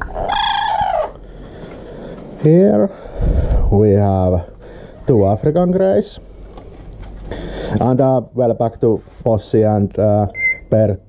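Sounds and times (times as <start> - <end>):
parrot calling: 0.0 - 1.2.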